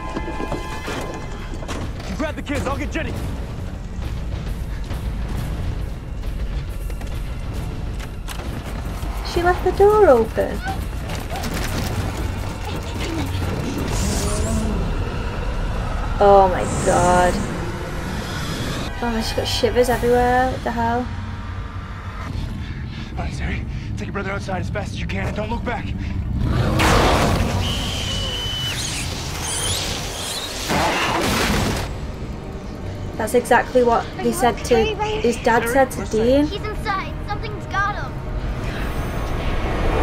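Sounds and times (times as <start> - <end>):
drama background score: 0.0 - 40.0
low rumble: 2.8 - 27.6
rushing swell: 14.0 - 22.6.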